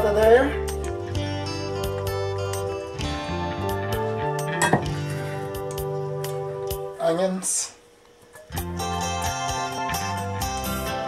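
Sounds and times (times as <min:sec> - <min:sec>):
soft background music: 0:00.0 - 0:07.7, 0:08.4 - 0:11.0.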